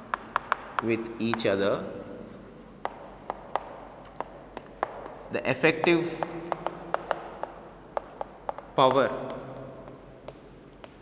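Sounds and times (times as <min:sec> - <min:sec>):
chalk scraping on chalkboard: 0:00.0 - 0:11.0
chalk tapping on board: 0:00.0 - 0:11.0.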